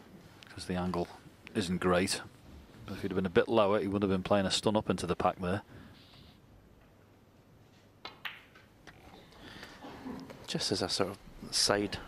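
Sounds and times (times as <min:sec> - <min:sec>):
snooker balls clicking: 0:07.8 - 0:10.5.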